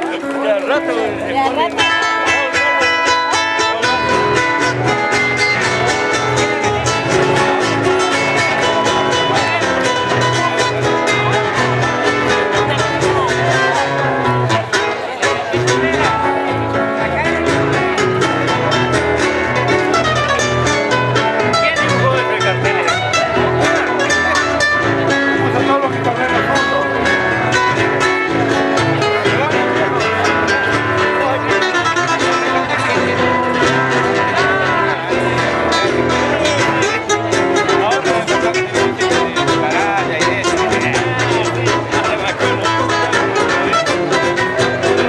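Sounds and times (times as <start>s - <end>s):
acoustic guitars playing: 0.0s - 45.0s.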